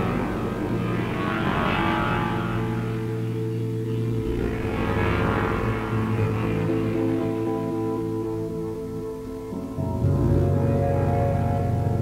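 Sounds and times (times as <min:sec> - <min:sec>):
electric guitar drone: 0:00.0 - 0:12.0.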